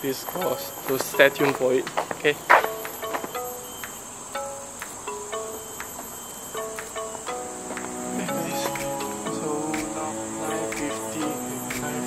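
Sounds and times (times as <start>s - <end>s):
insects droning: 0.0s - 12.0s
soft musical notes: 0.0s - 12.0s.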